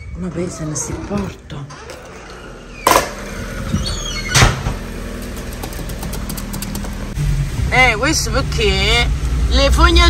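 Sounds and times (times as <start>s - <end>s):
car engine idling: 2.6s - 10.0s.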